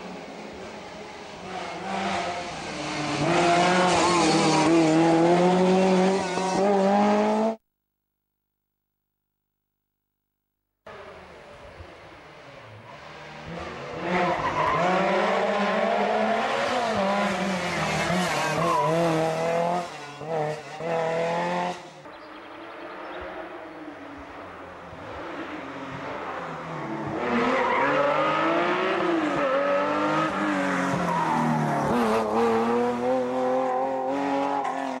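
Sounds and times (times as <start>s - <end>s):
rally car engines at full throttle: 0.0s - 7.6s, 10.9s - 35.0s.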